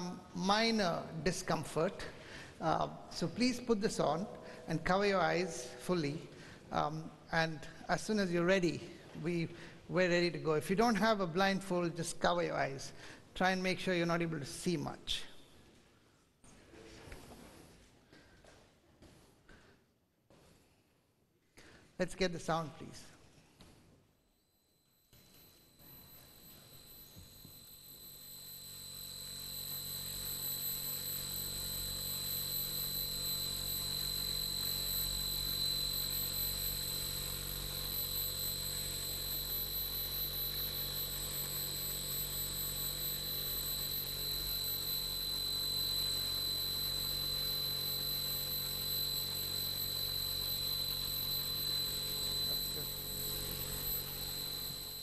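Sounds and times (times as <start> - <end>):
high piercing whine: 0.0 - 8.8, 24.2 - 55.0
harsh drone: 47.8 - 55.0.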